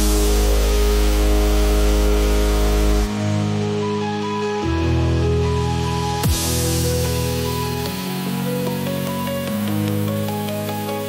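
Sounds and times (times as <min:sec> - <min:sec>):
distorted dubstep bass: 0:00.0 - 0:03.7, 0:06.1 - 0:11.0
heavy sub-bass: 0:00.0 - 0:11.0.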